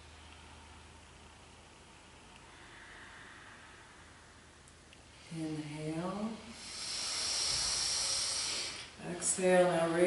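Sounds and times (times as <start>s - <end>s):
deep breath through nose: 6.6s - 9.0s.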